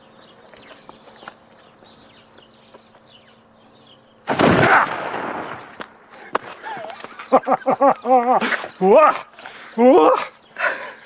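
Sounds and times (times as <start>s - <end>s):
gunshot blast: 4.3s - 5.7s.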